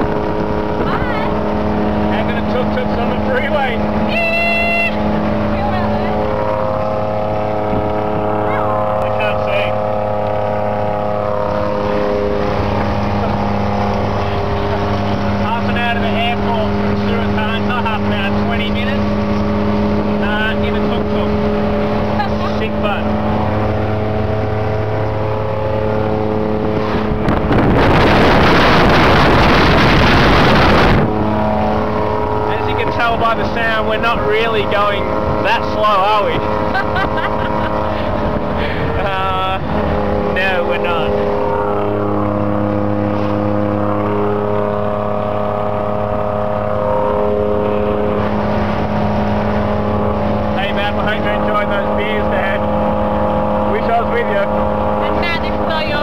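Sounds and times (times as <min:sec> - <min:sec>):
tuk tuk engine running: 0:00.0 - 0:56.0
wind rushing on microphone: 0:00.0 - 0:56.0.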